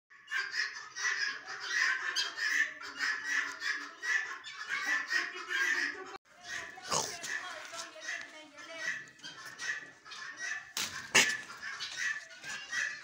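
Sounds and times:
pheasants calling: 0.1s - 13.0s.

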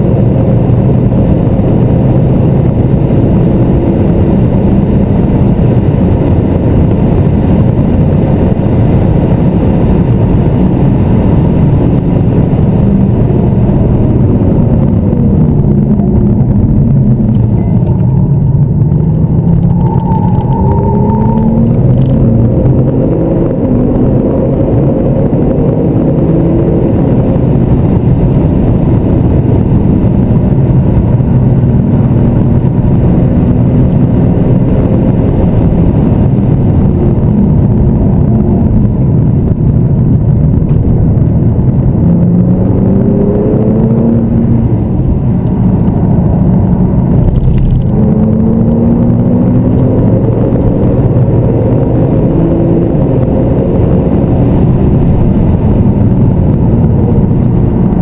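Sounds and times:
car engine accelerating: 0.0s - 58.0s
road and tyre noise: 0.0s - 58.0s.

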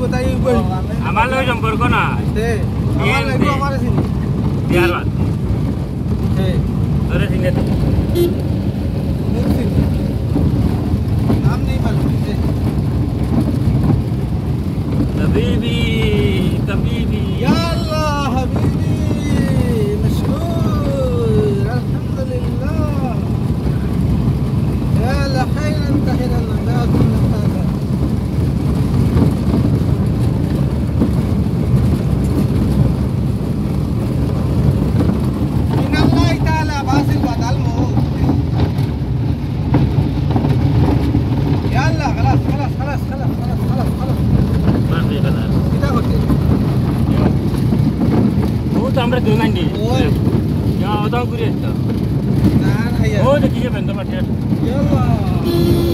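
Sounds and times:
vehicle engine and road noise: 0.0s - 55.9s
voices: 15.1s - 24.0s, 35.7s - 38.8s, 52.5s - 55.9s.

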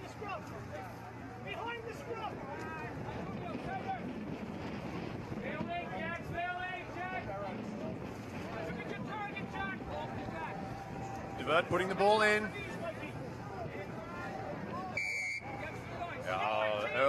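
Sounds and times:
outdoor noise haze: 0.0s - 17.0s
people calling and shouting: 0.0s - 17.0s
wind on microphone: 2.9s - 15.0s.

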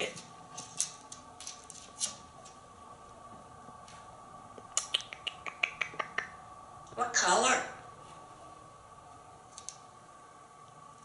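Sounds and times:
parrot making sharp clicks: 4.7s - 6.3s.

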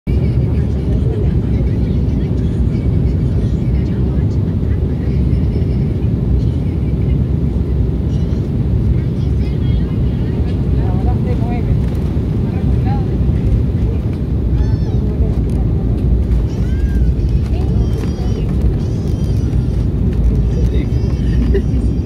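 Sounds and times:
airliner cabin engine rumble: 0.1s - 22.0s.

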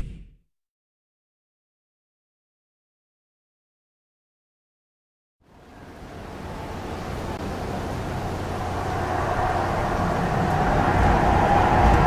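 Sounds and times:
low rumbling noise: 5.5s - 12.0s.

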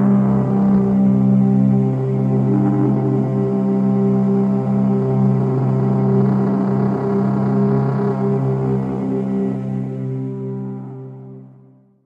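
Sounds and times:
ambient drone music: 0.0s - 11.5s.

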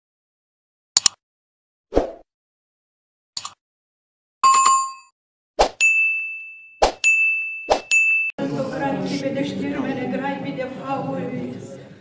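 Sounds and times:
sharp clicks: 1.0s - 1.2s
bright high-pitched ding: 5.8s - 8.4s
music: 8.4s - 12.0s
person speaking: 8.4s - 12.0s.

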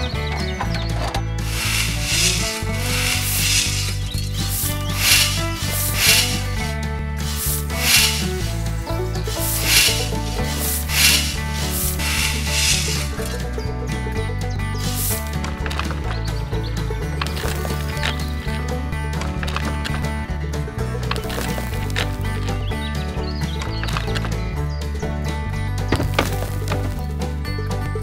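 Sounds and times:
background music with bass line: 0.0s - 28.0s
metal tool digging into sand: 1.4s - 13.3s, 14.8s - 15.3s.

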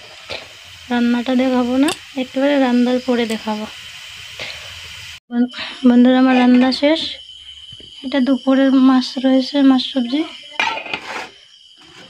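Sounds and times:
food sizzling in a pan: 0.0s - 5.2s, 5.9s - 12.0s.

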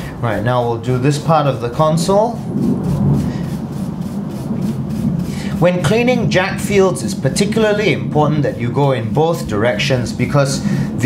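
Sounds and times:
low steady hum: 0.0s - 11.0s
brush bristles scratching: 0.2s - 11.0s.

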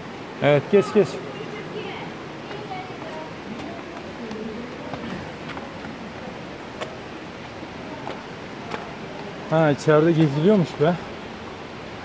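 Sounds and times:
rushing falling water: 0.0s - 12.0s
faint voices: 0.4s - 11.2s
footsteps on stone steps: 2.1s - 9.6s.

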